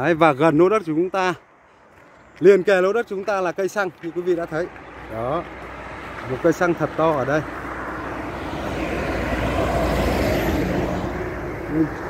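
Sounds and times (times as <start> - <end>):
truck passing by: 1.5 - 12.0.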